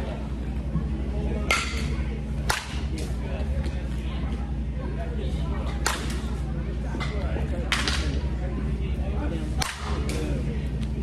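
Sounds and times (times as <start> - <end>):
steady low hum: 0.0 - 11.0
bat hitting softball: 1.5 - 2.9, 5.7 - 6.2, 9.6 - 10.2.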